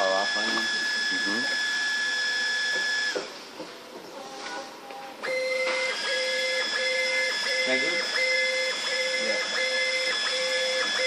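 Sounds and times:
pulsing printer drive whine: 0:00.0 - 0:03.3, 0:05.2 - 0:11.0
printer high whine: 0:00.0 - 0:03.4, 0:05.2 - 0:11.0.

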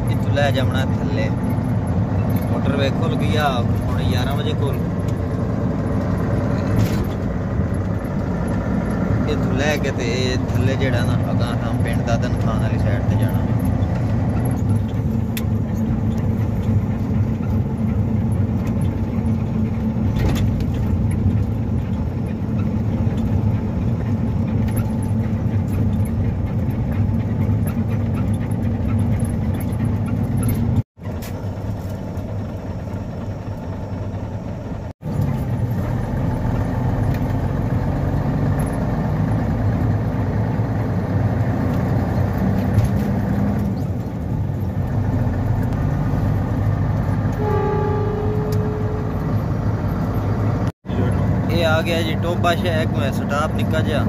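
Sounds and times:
truck diesel engine running: 0:00.0 - 0:54.0
tyre and road noise: 0:00.0 - 0:54.0.

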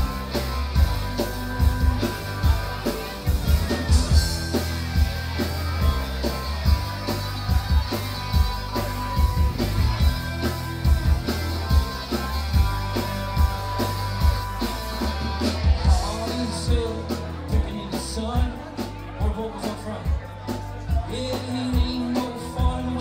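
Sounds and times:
drum beat: 0:00.0 - 0:20.3
electric guitar: 0:00.0 - 0:23.0
heavy bass: 0:00.0 - 0:23.0.

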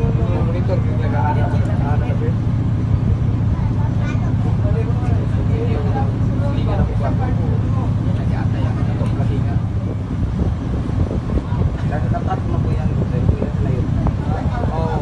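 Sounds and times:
people talking: 0:00.0 - 0:02.4, 0:03.4 - 0:10.0, 0:11.3 - 0:15.0
ferry engine humming: 0:00.0 - 0:15.0.

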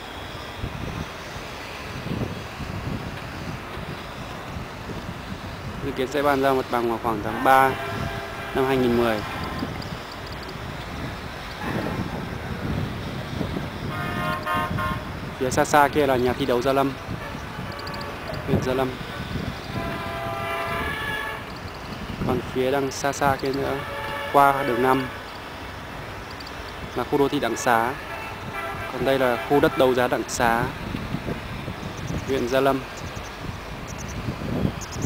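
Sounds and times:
outdoor background noise: 0:00.0 - 0:35.0
wind buffeting microphone: 0:00.0 - 0:35.0
distant horn chord: 0:07.3 - 0:09.6, 0:13.9 - 0:15.1, 0:19.7 - 0:21.5
faint high ticks: 0:09.5 - 0:11.6, 0:21.4 - 0:22.0, 0:26.2 - 0:26.9.

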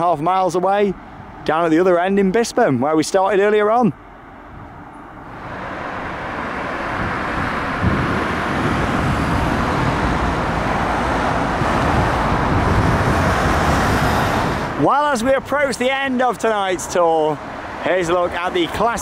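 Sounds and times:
cars driving along road: 0:00.0 - 0:19.0.

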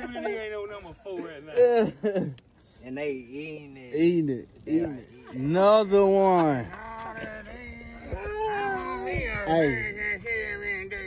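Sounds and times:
man's drawn-out sing-song cry: 0:05.6 - 0:11.0.

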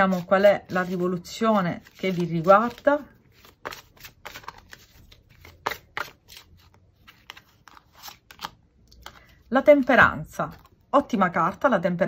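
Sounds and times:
cards being shuffled: 0:01.8 - 0:09.4.

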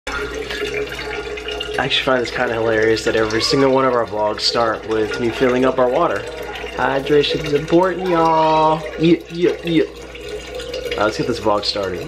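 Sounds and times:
tap water filling container: 0:00.1 - 0:12.0
man speaking: 0:01.8 - 0:09.9.

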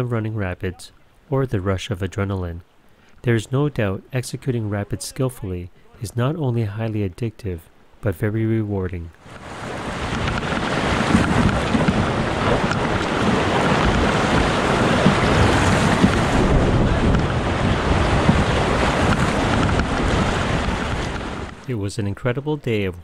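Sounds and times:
whitewater rapids roaring: 0:09.2 - 0:21.6.

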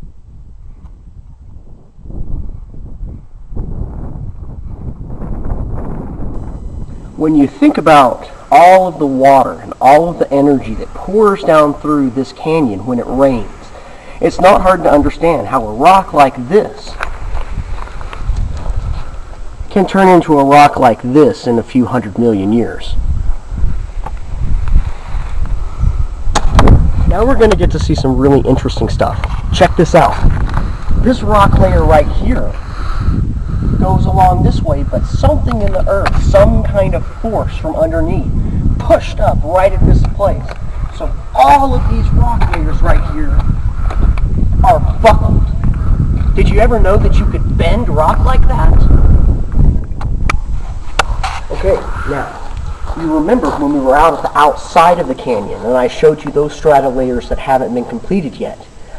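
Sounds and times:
wind buffeting microphone: 0:00.0 - 0:58.9
microphone handling knocks: 0:26.3 - 0:27.9.

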